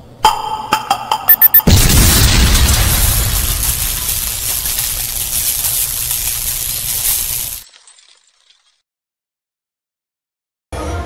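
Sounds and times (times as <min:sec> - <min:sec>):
heavy boom with low rumble: 0:01.7 - 0:04.0.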